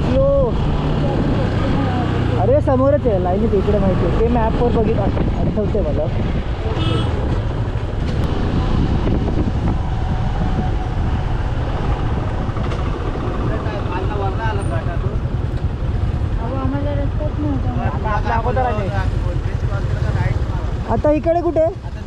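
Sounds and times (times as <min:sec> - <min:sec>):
motorcycle engine running: 0:00.0 - 0:22.0
wind noise on microphone: 0:03.8 - 0:14.3.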